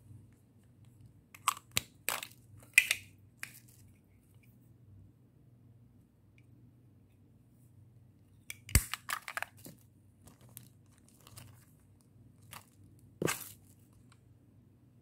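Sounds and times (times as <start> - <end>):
plastic packaging crackling: 8.8 - 11.7, 12.4 - 13.8.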